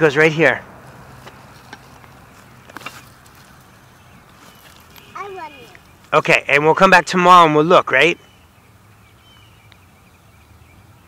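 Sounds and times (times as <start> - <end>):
clicks and rustles on gravel: 0.8 - 6.2.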